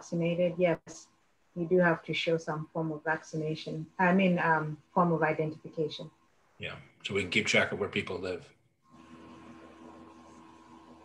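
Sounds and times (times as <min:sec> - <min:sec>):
faint steady hiss: 0:00.0 - 0:08.5
low electrical hum: 0:00.0 - 0:11.0.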